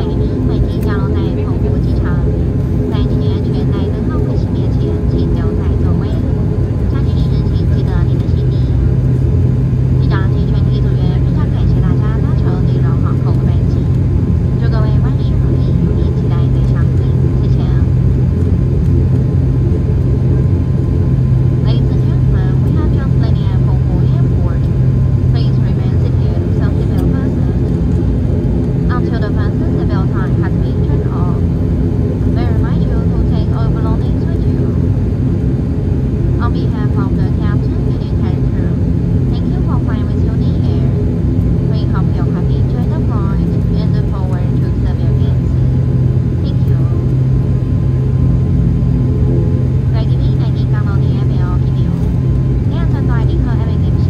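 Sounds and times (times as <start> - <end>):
faint passenger voices: 0.0 - 18.6, 19.2 - 48.2, 49.0 - 54.0
turboprop engine drone in cabin: 0.0 - 54.0.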